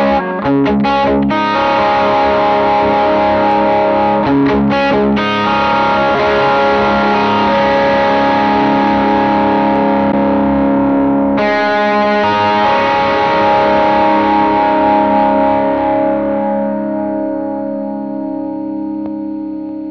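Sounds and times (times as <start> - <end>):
overdriven electric guitar chords: 0.0 - 19.9.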